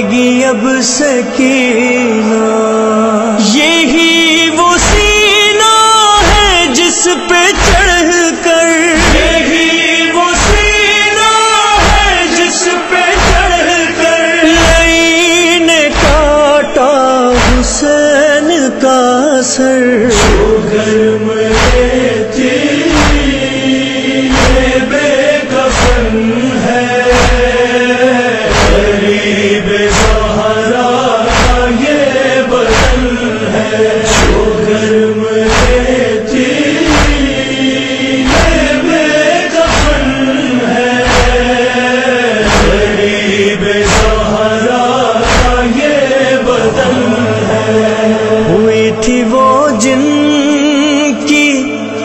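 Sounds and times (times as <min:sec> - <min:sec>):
chorus chanting a lament: 0:00.0 - 0:52.0
steady beat of thumps: 0:04.8 - 0:05.3, 0:06.2 - 0:06.7, 0:07.6 - 0:08.1, 0:09.0 - 0:09.6, 0:10.4 - 0:10.9, 0:11.8 - 0:12.4, 0:13.2 - 0:13.7, 0:14.6 - 0:15.2, 0:15.9 - 0:16.5, 0:17.4 - 0:17.9, 0:20.1 - 0:20.8, 0:21.5 - 0:22.1, 0:22.8 - 0:23.6, 0:24.3 - 0:25.0, 0:25.6 - 0:26.3, 0:27.1 - 0:27.8, 0:28.5 - 0:30.6, 0:31.3 - 0:32.0, 0:32.6 - 0:33.3, 0:34.1 - 0:34.8, 0:35.5 - 0:36.1, 0:36.8 - 0:37.6, 0:38.2 - 0:38.9, 0:39.6 - 0:40.2, 0:41.0 - 0:41.7, 0:42.4 - 0:44.5, 0:45.2 - 0:45.8.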